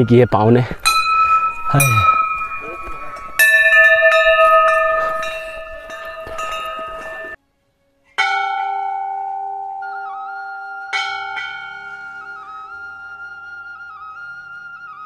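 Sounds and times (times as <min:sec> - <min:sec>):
brass bells clanging together: 0:00.0 - 0:07.4, 0:08.2 - 0:10.0, 0:10.9 - 0:12.4
single bell struck and ringing: 0:00.8 - 0:07.4.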